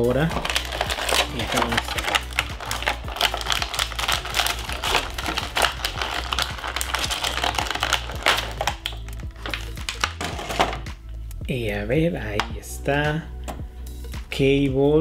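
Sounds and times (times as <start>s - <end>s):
plastic packaging crinkling: 0.0s - 10.9s.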